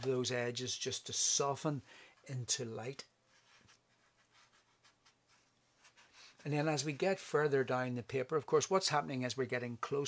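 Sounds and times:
brush strokes on paper: 0:03.3 - 0:07.0.

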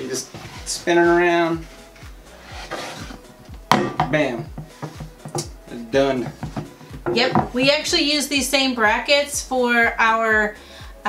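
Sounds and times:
faint background music: 0:00.0 - 0:11.0
metal bracket knocking on wood: 0:03.7 - 0:05.5, 0:06.2 - 0:07.7.

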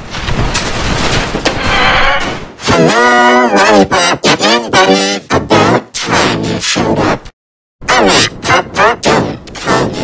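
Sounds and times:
distorted cartoon voices: 0:02.6 - 0:10.0.

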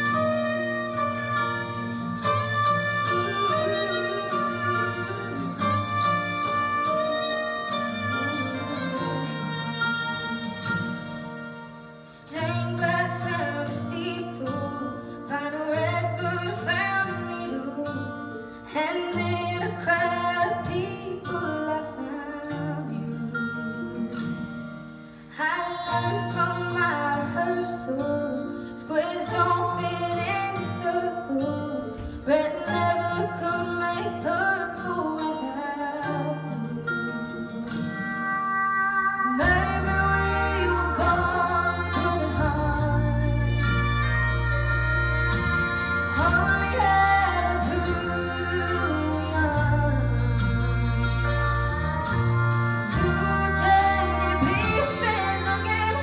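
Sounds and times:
acoustic guitar: 0:00.0 - 0:56.0
instrumental accompaniment: 0:00.0 - 0:56.0
strings: 0:00.0 - 0:56.0
woman singing country ballad: 0:00.0 - 0:56.0.

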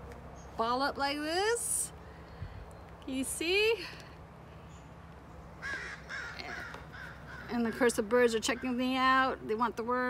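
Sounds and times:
low steady background noise: 0:00.0 - 0:10.0
bird harsh cawing call: 0:05.5 - 0:07.8.

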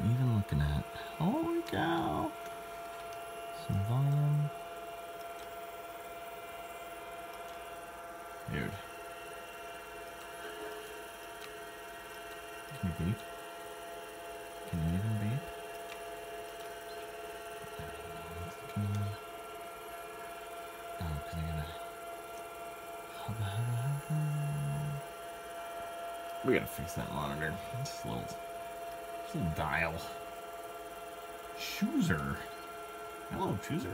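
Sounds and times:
computer humming: 0:00.0 - 0:33.9
short low tones: 0:23.3 - 0:25.1.

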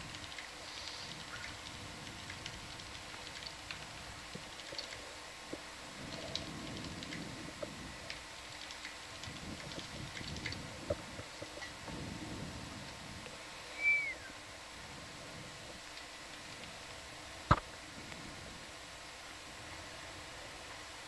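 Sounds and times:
low uneven murmur: 0:00.0 - 0:21.0.

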